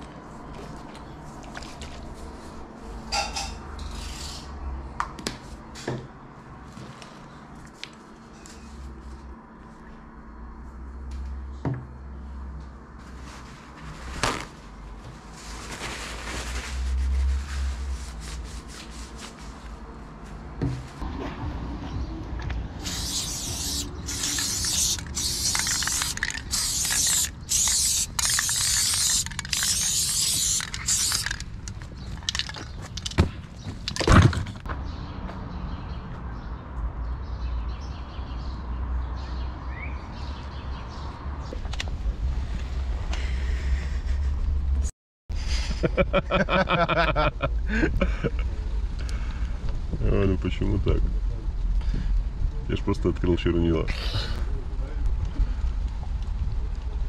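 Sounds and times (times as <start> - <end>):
spray paint can hissing: 22.8 - 32.5
clicks and rustles of markers: 22.8 - 33.2.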